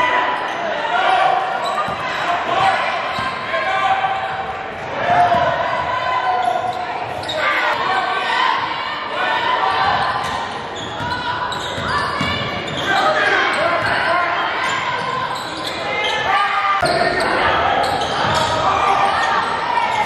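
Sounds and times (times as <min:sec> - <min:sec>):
echoing voices: 0:00.0 - 0:20.0.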